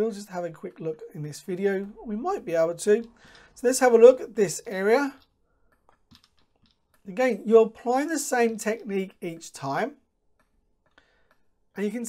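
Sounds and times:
computer mouse clicks: 5.1s - 7.1s, 10.3s - 11.5s.

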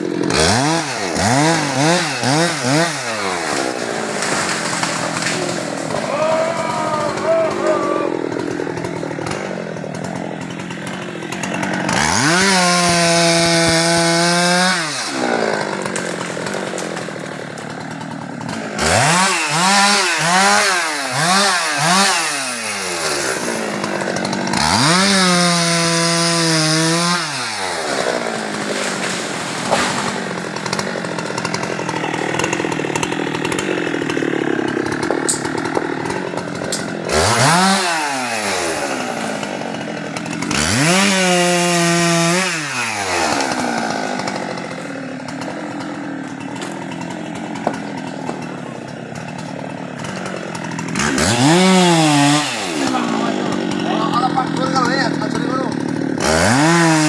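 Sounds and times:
chainsaw revving: 0.0s - 57.0s.

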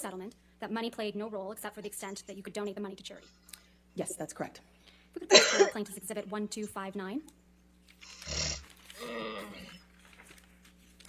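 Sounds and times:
woman groaning: 8.3s - 9.8s.

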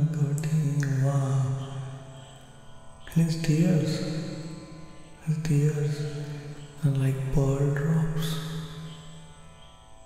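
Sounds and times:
man chanting on a held note: 0.0s - 2.2s, 3.1s - 4.6s, 5.2s - 9.0s.

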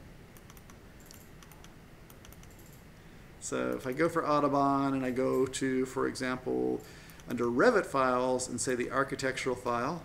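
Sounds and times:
mouse and keyboard clicking: 0.4s - 2.8s.

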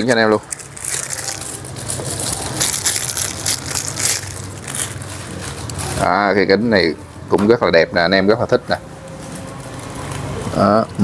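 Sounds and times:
plastic bag crinkling: 0.0s - 6.5s.

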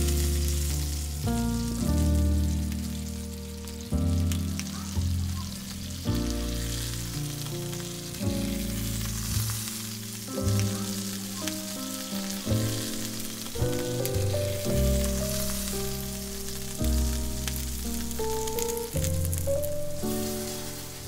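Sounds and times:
background music with melody: 0.0s - 21.0s
bread sizzling in a pan: 0.0s - 21.0s.

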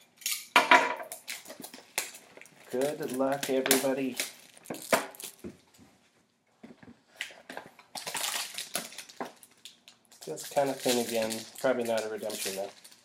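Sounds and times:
cellophane wrap crinkling: 1.0s - 5.8s, 7.1s - 13.0s.

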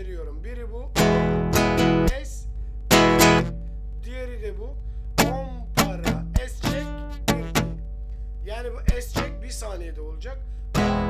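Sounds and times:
person voicing rhythm syllables: 0.4s - 11.0s
guitar strumming: 1.0s - 3.8s, 4.9s - 8.0s, 8.8s - 9.6s, 10.7s - 11.0s
muted guitar stroke click: 5.2s - 8.2s.

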